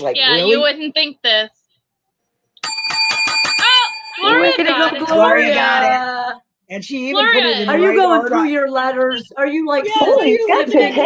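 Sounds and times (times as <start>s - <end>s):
small bell ringing in a trill: 2.6s - 4.7s.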